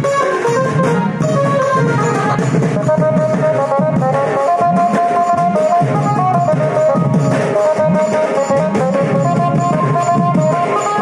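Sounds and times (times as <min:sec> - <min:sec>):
high melody: 0:00.0 - 0:11.0
pitch-bending drum beat: 0:00.0 - 0:11.0.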